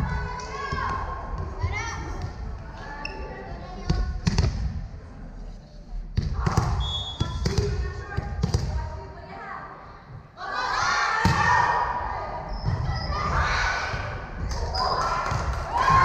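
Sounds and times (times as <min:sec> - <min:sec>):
voices and chatter: 0:00.0 - 0:16.0.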